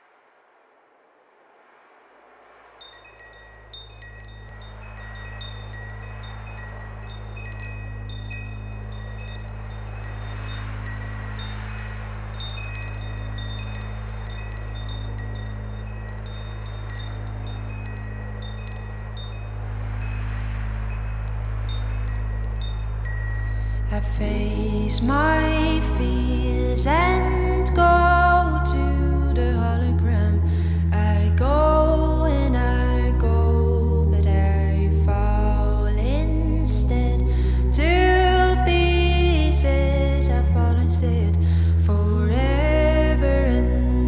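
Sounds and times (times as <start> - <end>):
low steady drone: 0.0 - 44.0
wind chimes tinkling: 2.8 - 44.0.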